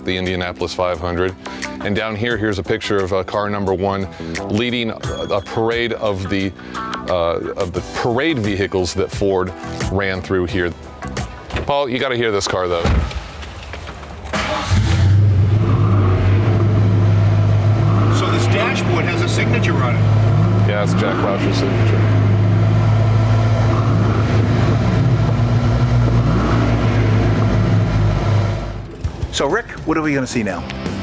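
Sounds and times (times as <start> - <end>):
car engine revving: 14.3 - 31.0.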